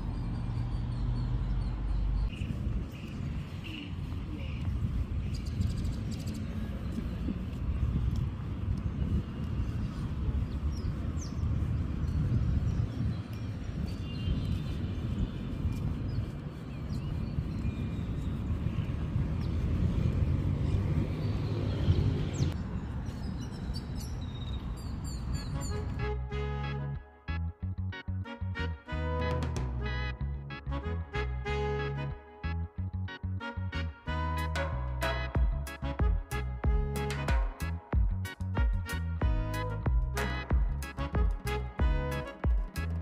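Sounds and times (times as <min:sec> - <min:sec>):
wind buffeting microphone: 0:00.0 - 0:26.1.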